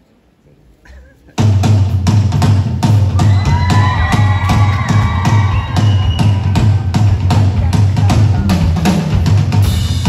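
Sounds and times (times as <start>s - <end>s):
bass: 0.9s - 10.0s
drum beat: 1.4s - 10.0s.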